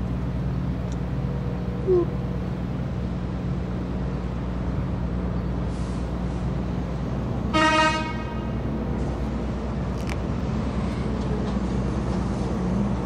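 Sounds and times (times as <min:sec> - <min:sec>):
low hum of street traffic: 0:00.0 - 0:13.0
vehicle horn toot: 0:07.5 - 0:08.5.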